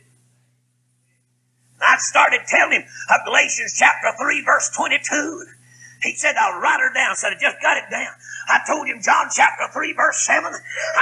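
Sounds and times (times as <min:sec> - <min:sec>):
faint low hum: 0:00.0 - 0:11.0
man preaching: 0:01.8 - 0:11.0.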